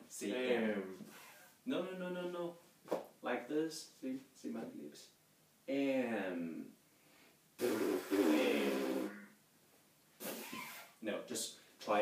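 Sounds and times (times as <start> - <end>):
lips buzzing: 7.6 - 9.4, 10.2 - 11.0.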